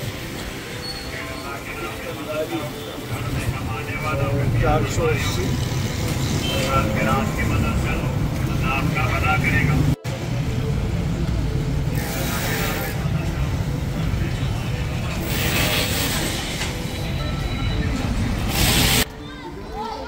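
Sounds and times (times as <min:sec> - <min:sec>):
traffic rumble: 0:00.0 - 0:19.6
indistinct voices chattering: 0:00.0 - 0:20.0.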